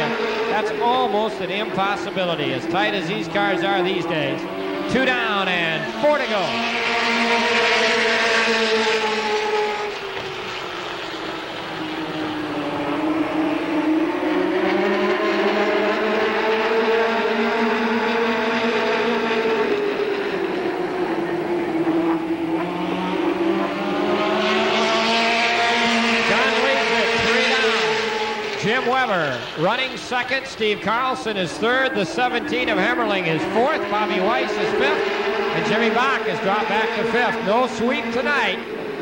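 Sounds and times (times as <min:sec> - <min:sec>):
cars sweeping past close by: 0:00.0 - 0:39.0
race car engines running hard: 0:00.0 - 0:39.0.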